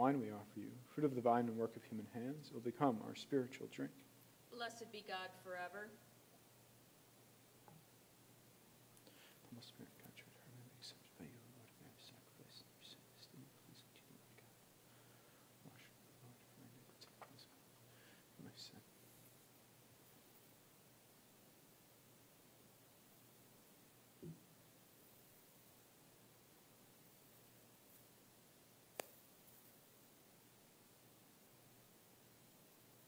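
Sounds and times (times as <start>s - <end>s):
man whispering a prayer: 9.1s - 14.7s, 15.5s - 17.6s, 18.2s - 19.0s.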